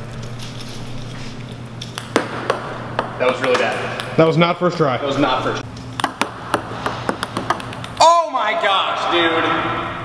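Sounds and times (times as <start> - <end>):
ping-pong ball bouncing: 1.8 - 4.4, 6.0 - 8.0.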